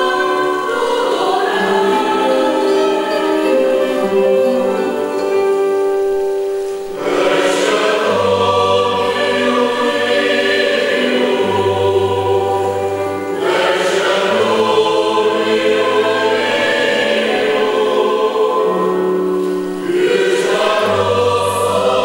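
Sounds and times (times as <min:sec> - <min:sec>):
instrumental accompaniment: 0:00.0 - 0:22.0
mixed choir singing: 0:00.0 - 0:22.0.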